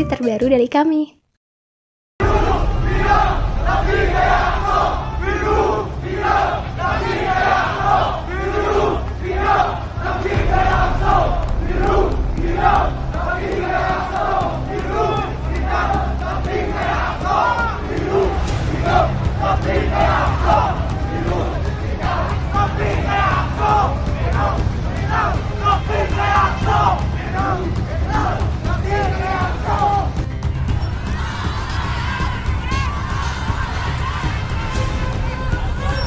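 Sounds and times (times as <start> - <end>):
crowd shouting and chanting: 2.2 - 36.0
steady low rumble: 2.2 - 36.0.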